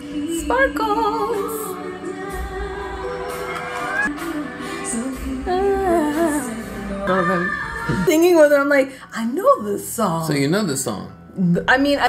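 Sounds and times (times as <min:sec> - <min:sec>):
woman singing a ballad: 0:00.0 - 0:08.3.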